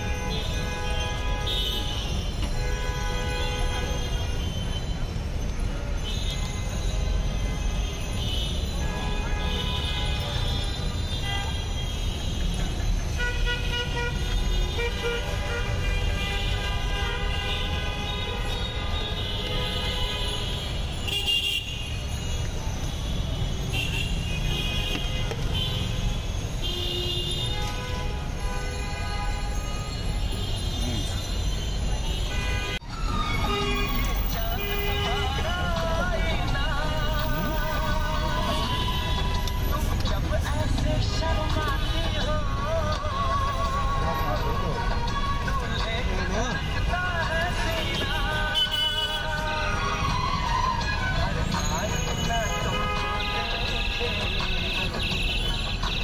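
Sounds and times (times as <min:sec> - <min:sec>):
vehicle horns honking: 0:00.0 - 0:05.1, 0:05.9 - 0:22.2, 0:22.9 - 0:32.8, 0:33.4 - 0:39.9, 0:41.1 - 0:42.9, 0:46.4 - 0:49.6, 0:51.6 - 0:56.0.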